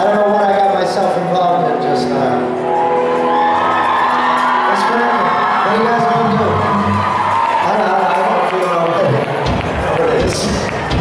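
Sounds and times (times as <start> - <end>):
live rock band playing: 0.0 - 11.0
crowd whooping and cheering: 2.3 - 11.0.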